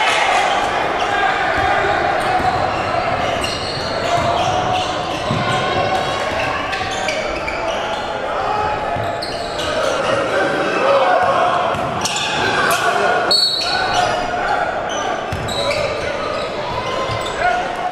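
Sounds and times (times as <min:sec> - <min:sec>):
crowd voices and shouts: 0:00.0 - 0:17.9.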